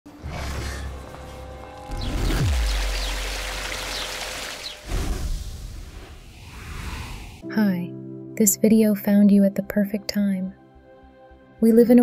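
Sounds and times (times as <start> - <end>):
deep bass drone: 0.1 - 4.8
downward sweep: 4.8 - 7.5.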